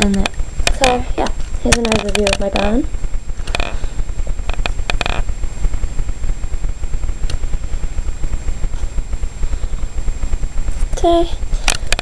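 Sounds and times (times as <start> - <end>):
camera handling rumble: 3.4 - 3.8, 4.4 - 5.3.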